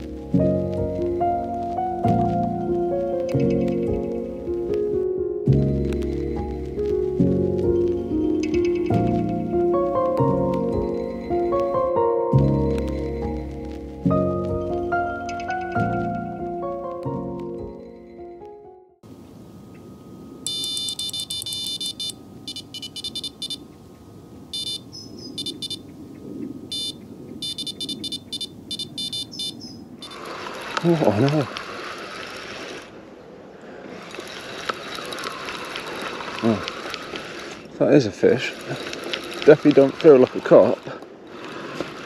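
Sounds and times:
bite alarm high beeps: 20.4s - 23.6s, 24.6s - 25.8s, 26.7s - 30.2s
rustling: 33.9s - 42.0s.

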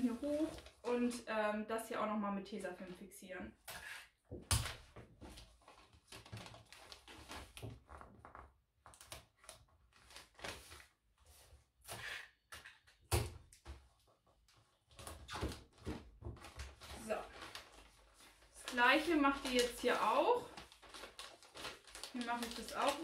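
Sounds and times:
wrapping paper crinkling: 0.0s - 0.9s, 5.4s - 11.5s, 16.4s - 23.0s.

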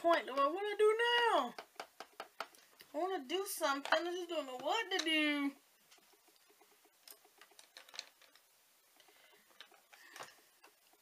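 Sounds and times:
makeup palettes clicking and tapping: 0.0s - 11.0s.

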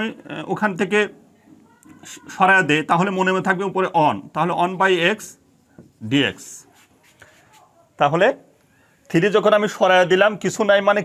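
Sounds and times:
marker writing on whiteboard: 5.7s - 7.8s.

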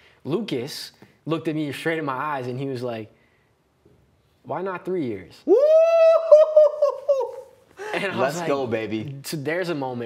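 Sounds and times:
man laughing in high pitch: 5.5s - 8.2s.

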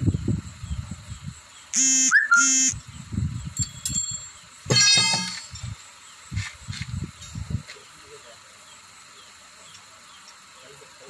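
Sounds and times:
horn honks: 1.8s - 2.8s
metal bar knocking on truck wheel: 3.6s - 5.6s.

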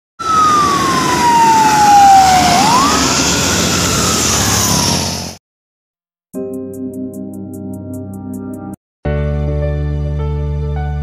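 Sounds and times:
engine and road noise: 0.2s - 5.4s
truck siren horn: 0.2s - 5.4s.

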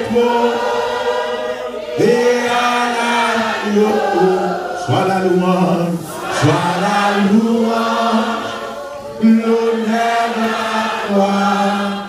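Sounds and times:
man singing into a microphone: 2.0s - 8.5s, 9.2s - 12.0s.

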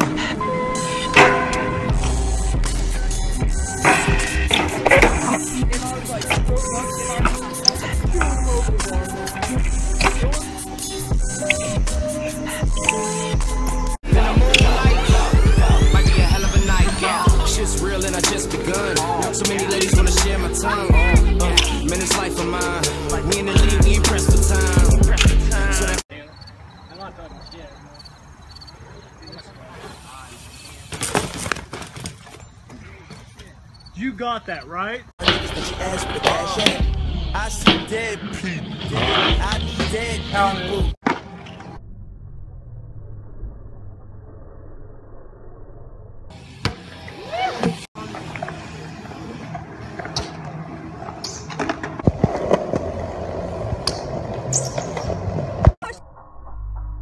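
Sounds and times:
bike tyres rolling on concrete: 28.5s - 33.8s, 46.4s - 55.8s
bike crashing onto dirt: 30.8s - 32.5s.

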